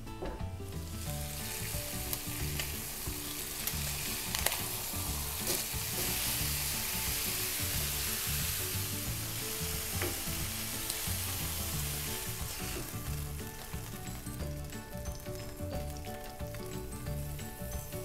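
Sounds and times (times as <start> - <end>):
meat sizzling in a skillet: 0.9 - 18.0
tongs clicking: 2.1 - 6.2.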